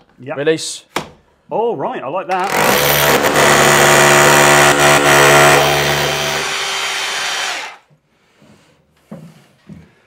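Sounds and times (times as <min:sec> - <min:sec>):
power drill winding down: 0:02.4 - 0:07.8.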